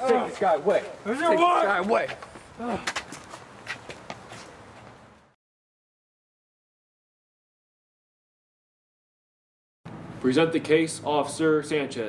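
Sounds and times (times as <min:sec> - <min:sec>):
footsteps and scuffling: 0:00.0 - 0:05.3.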